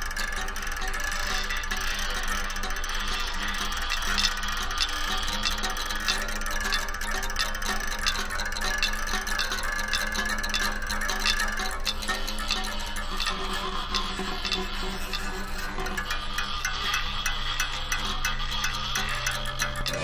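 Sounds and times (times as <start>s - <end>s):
low drone: 0.0s - 20.0s
plucked and ticking strings: 0.0s - 20.0s
steady high tone: 0.0s - 20.0s.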